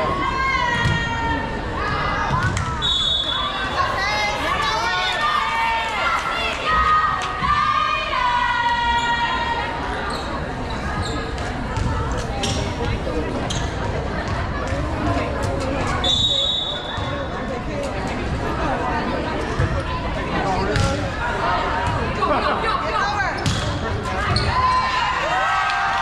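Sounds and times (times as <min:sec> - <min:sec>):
girls shouting and cheering: 0:00.0 - 0:02.8, 0:03.4 - 0:09.8.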